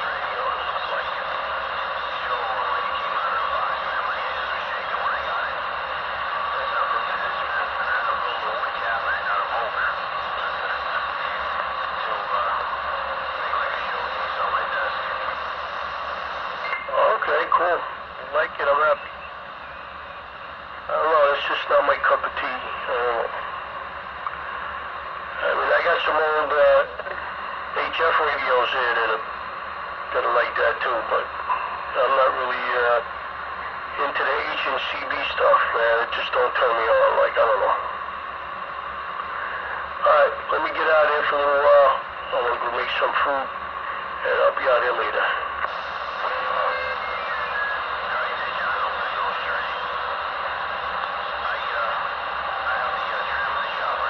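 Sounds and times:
radio static hiss: 0.0 - 54.0
voices over radio speaker: 0.0 - 54.0.

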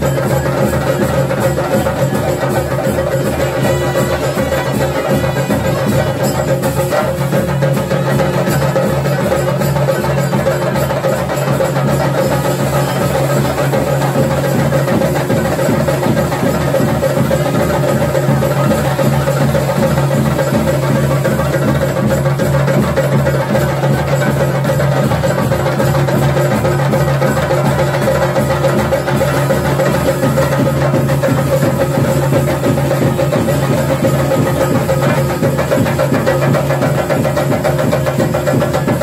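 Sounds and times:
drums beaten with sticks: 0.0 - 39.0.

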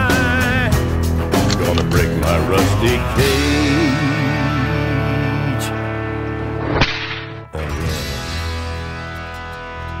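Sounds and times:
whip crack: 6.7 - 7.4.

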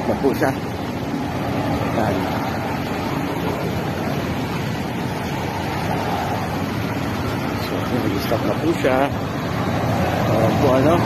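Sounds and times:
cars driving past: 0.0 - 11.0
road traffic rushing: 0.0 - 11.0.

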